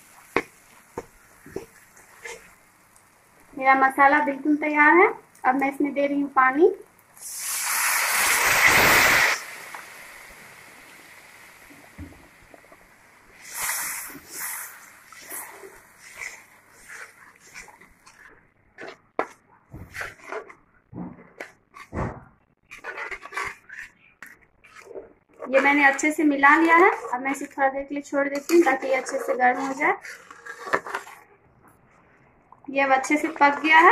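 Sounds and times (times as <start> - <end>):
water sizzling in hot pan: 0.0 - 3.5, 7.0 - 18.2
metal spatula scraping pan: 15.1 - 19.3, 19.9 - 20.6, 22.7 - 31.3, 32.9 - 33.9.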